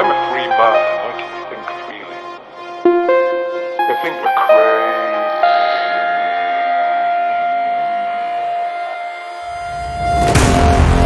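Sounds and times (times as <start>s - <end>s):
bright high synth note: 0.0s - 10.3s
held synth chord: 0.0s - 11.0s.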